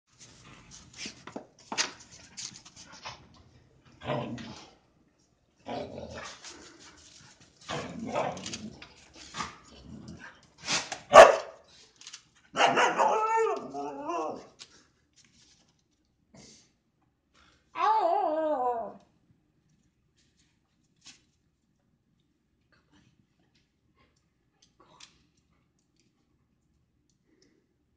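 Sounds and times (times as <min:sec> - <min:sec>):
husky howling: 0:12.7 - 0:14.5.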